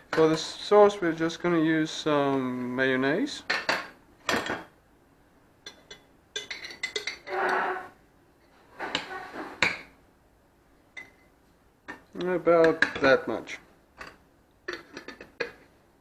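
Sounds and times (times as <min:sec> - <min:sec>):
spoon clinking on glass: 0:05.6 - 0:07.3, 0:11.0 - 0:11.2
spoon scraping jar: 0:06.8 - 0:08.0.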